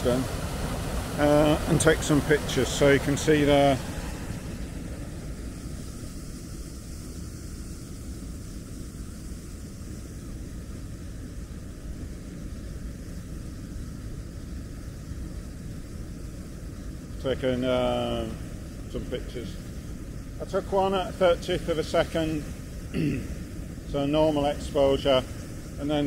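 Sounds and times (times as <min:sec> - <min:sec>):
waterfall rushing: 0:00.0 - 0:06.0, 0:17.4 - 0:26.0.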